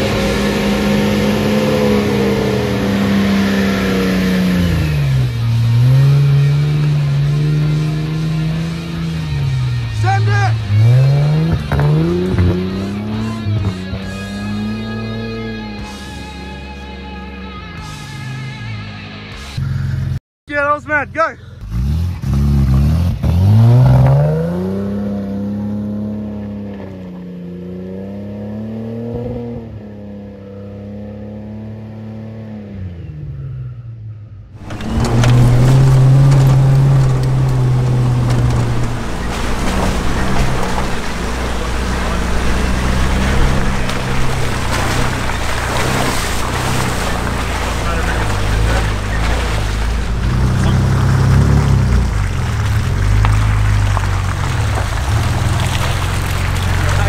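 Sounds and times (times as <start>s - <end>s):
vehicle engine revving: 0.0s - 20.2s, 21.4s - 57.0s
tyre noise on dirt track: 34.5s - 57.0s
rattling: 34.6s - 57.0s.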